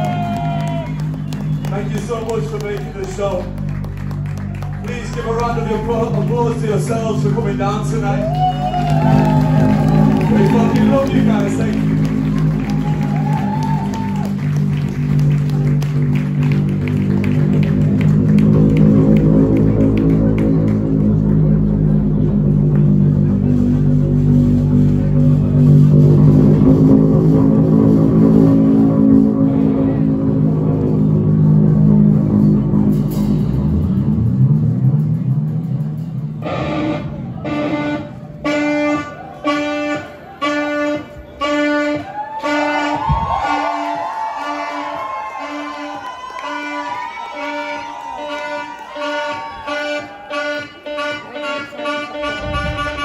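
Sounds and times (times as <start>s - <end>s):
electric guitar and bass drone: 0.0s - 53.0s
clipped pitched notes: 14.1s - 43.9s.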